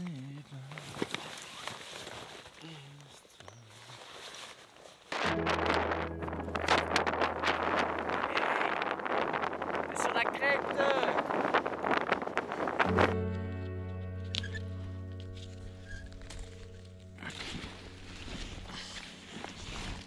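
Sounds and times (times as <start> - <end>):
wind buffeting microphone: 5.2 - 13.3.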